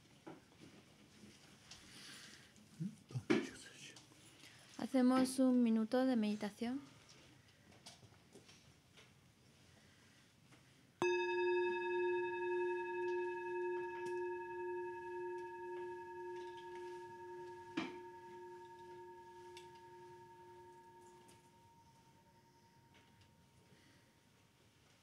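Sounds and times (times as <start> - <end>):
singing bowl ringing: 11.0 - 24.0.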